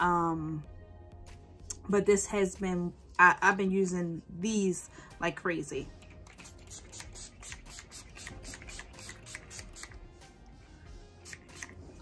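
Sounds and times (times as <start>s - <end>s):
spray bottle mist hisses: 6.3s - 10.1s, 11.2s - 12.0s.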